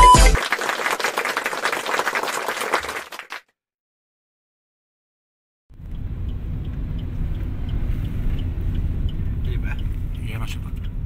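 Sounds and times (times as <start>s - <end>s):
applause: 0.0s - 3.5s.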